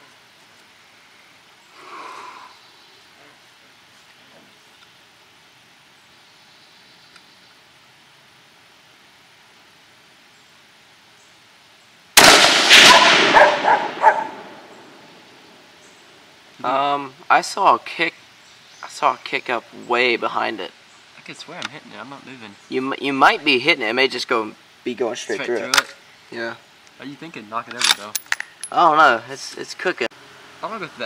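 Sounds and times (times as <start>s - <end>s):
rifle shot: 12.2s - 15.0s
dogs barking: 12.8s - 14.6s.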